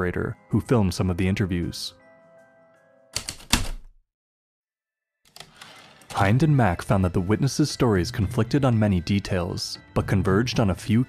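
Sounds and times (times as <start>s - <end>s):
typewriter key strikes: 3.2s - 3.9s.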